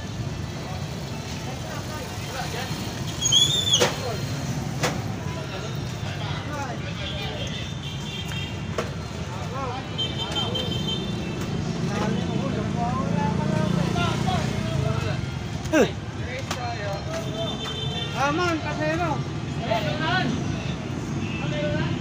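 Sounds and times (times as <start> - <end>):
street traffic hum: 0.0 - 22.0
people talking: 11.7 - 20.5.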